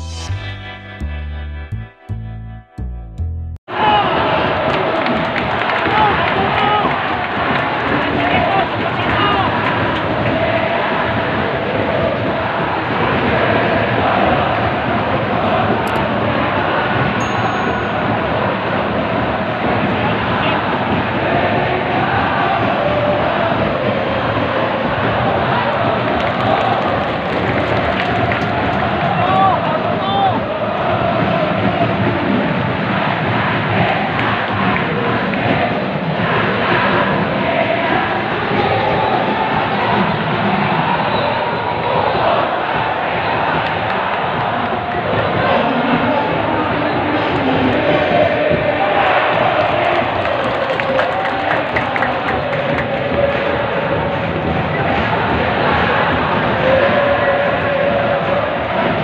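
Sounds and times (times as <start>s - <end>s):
stadium crowd din: 3.7s - 59.0s
supporters singing and chanting: 3.7s - 59.0s.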